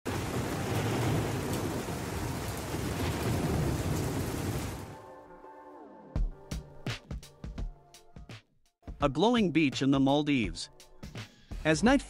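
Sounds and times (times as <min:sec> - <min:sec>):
low rolling thunder: 0:00.1 - 0:05.0
rain pouring: 0:00.1 - 0:05.0.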